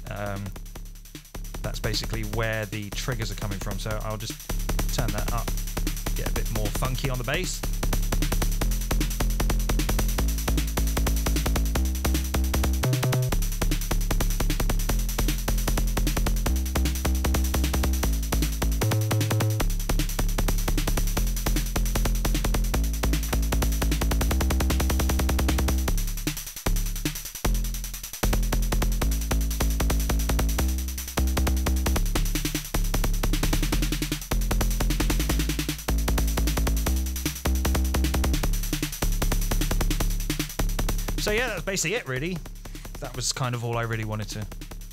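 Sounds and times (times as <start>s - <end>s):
synth kick drum bassline: 0.0s - 44.9s
keyboard riff: 11.3s - 13.3s, 16.5s - 19.6s.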